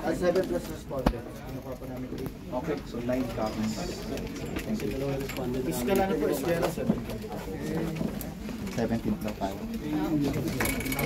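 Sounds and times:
murmur of overlapping voices: 0:00.0 - 0:11.0.

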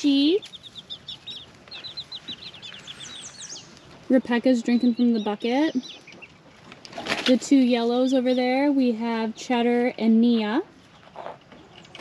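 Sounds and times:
chicks peeping: 0:00.0 - 0:09.2.

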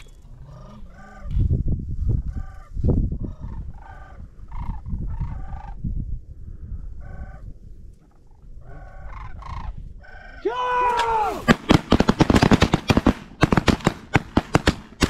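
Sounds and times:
cranes rattling calls: 0:03.3 - 0:05.8, 0:08.6 - 0:10.4.

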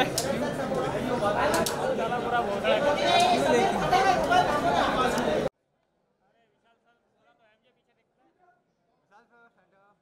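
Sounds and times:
people chattering: 0:00.0 - 0:05.5.

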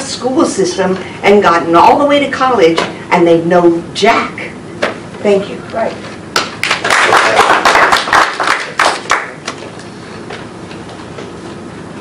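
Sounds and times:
audience applause: 0:06.6 - 0:09.4.

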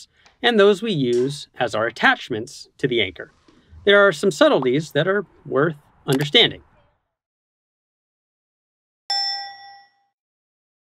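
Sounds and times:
notification chime ding: 0:09.1 - 0:10.1.

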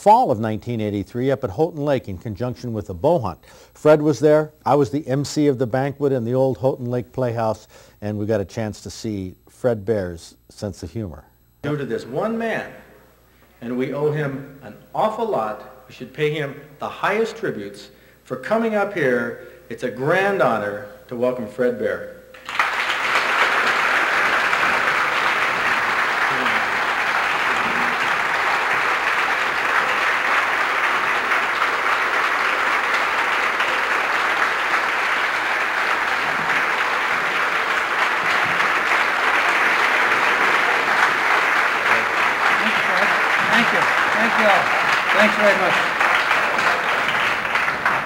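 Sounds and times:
audience applauding: 0:22.3 - 0:48.0.

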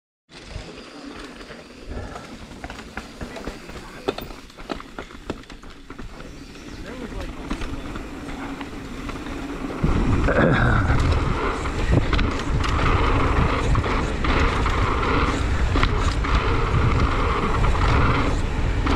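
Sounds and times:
bike rattling and clicking: 0:00.3 - 0:18.9
tyres rumbling on dirt: 0:00.3 - 0:18.9.

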